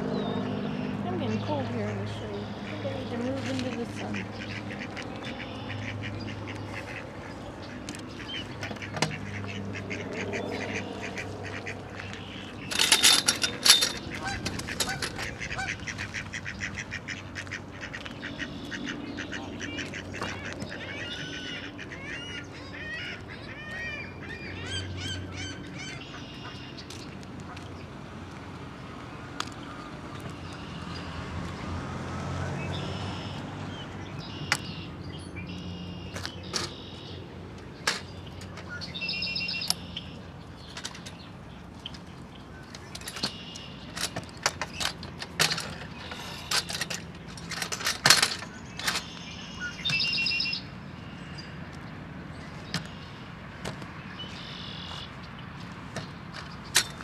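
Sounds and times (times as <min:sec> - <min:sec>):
ducks quacking: 0:00.4 - 0:26.7
geese honking: 0:00.4 - 0:26.7.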